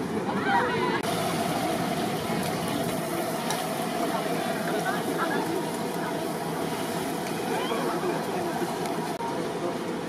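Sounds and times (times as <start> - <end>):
engine hum: 0.9 - 10.0.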